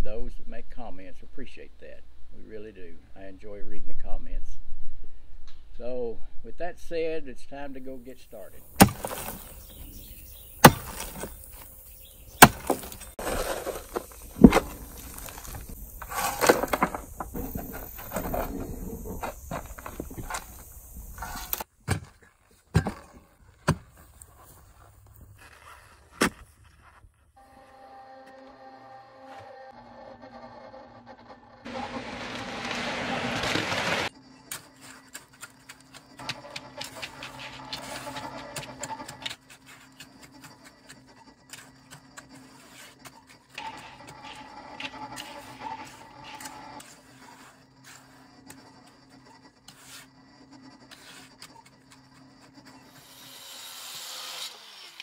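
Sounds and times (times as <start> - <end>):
shovel digging in rocky soil: 8.7 - 22.2
float scraping wet concrete: 12.4 - 21.6, 29.7 - 53.0.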